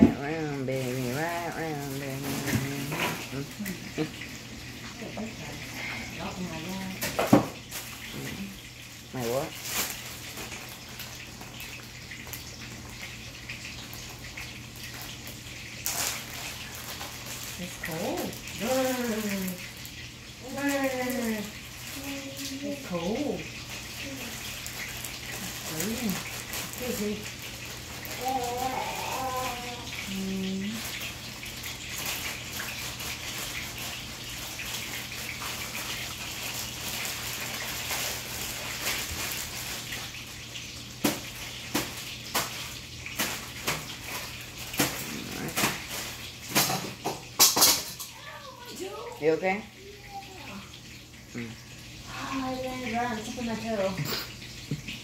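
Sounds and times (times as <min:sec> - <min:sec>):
person's voice: 0:00.0 - 0:04.2
water running: 0:00.0 - 0:55.0.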